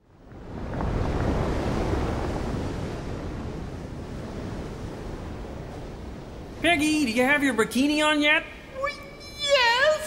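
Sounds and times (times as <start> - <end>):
waves washing on a beach: 0.0 - 8.8.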